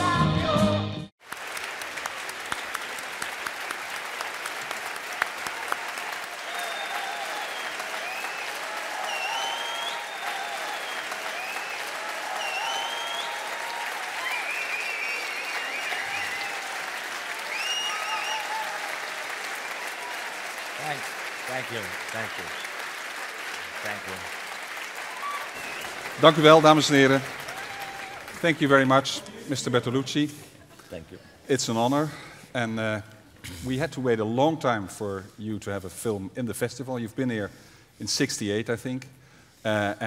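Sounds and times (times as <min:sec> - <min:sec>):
music: 0:00.0 - 0:01.1
large audience applauding: 0:01.2 - 0:30.2.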